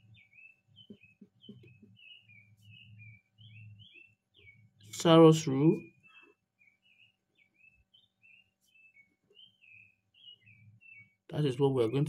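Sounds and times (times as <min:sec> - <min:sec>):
high-pitched bird chirps: 0:00.0 - 0:11.4.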